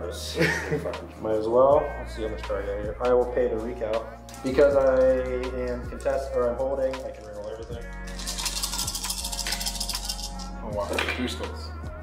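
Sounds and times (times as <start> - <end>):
background music: 0.0 - 12.0
plastic dice rattling: 7.1 - 10.4.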